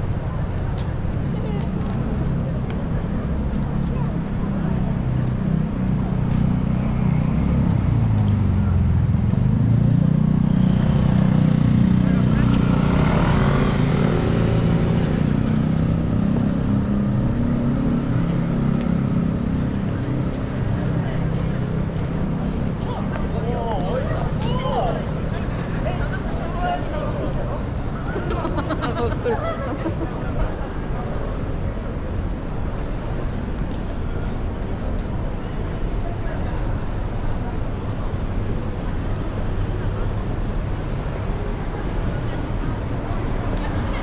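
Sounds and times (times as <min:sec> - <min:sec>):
passers-by talking: 0:00.0 - 0:44.0
traffic rumble: 0:00.0 - 0:44.0.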